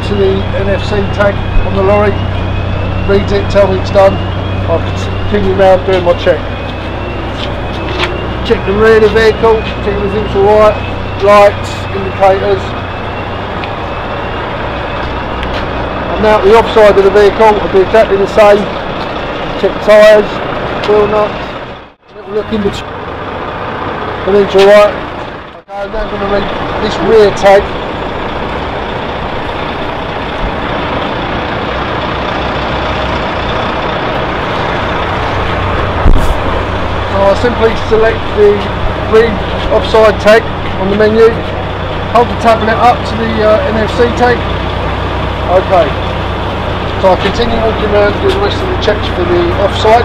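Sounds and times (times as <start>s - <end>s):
diesel engine idling: 0.0s - 50.0s.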